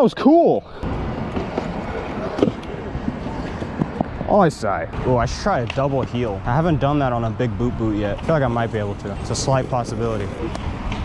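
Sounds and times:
scooter wheels rolling on concrete: 0.7s - 11.0s.

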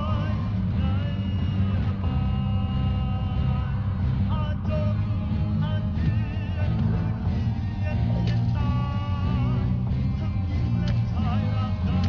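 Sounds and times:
deep steady rumble: 0.0s - 12.0s.

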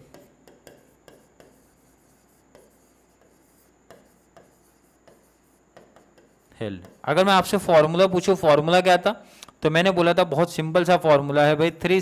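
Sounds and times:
marker pen writing on board: 0.0s - 7.3s.

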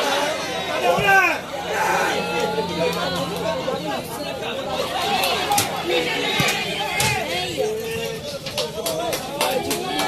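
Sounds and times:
crowd chatter and calling: 0.0s - 10.0s.

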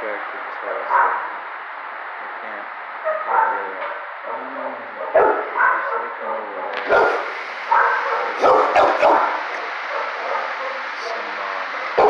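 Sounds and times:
dogs barking and yipping: 0.9s - 1.3s, 3.0s - 3.7s, 5.1s - 11.0s.

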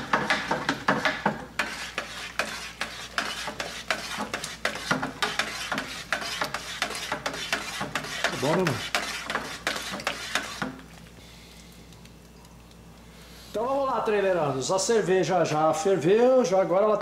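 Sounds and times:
paddle knocking against pot: 0.0s - 1.5s
liquid swishing and sloshing: 0.3s - 13.2s.

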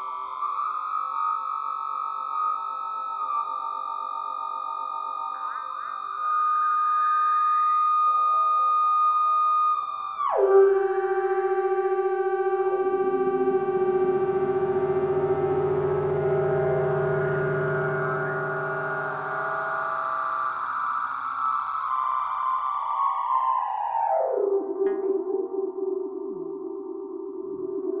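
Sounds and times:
electronic drone music: 10.4s - 20.6s.

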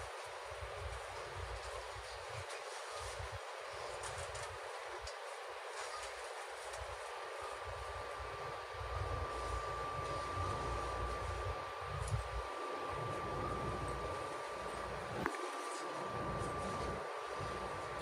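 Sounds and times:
tram equipment hum and rumble: 0.0s - 18.0s
high-pitched whine: 8.1s - 18.0s.

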